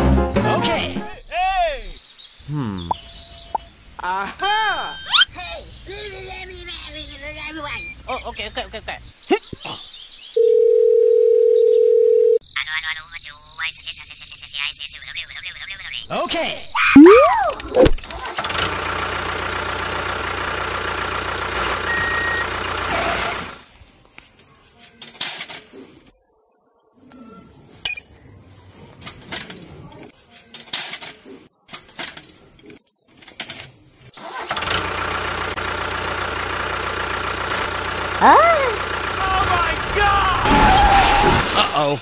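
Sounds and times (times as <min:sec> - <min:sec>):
person exclaiming: 0:02.5 - 0:02.9, 0:04.0 - 0:05.5, 0:38.2 - 0:41.2
tractor engine running: 0:17.6 - 0:23.7, 0:34.2 - 0:40.4.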